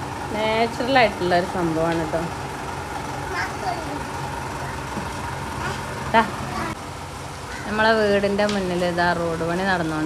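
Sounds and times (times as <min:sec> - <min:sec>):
truck diesel engine running: 0:00.0 - 0:10.0.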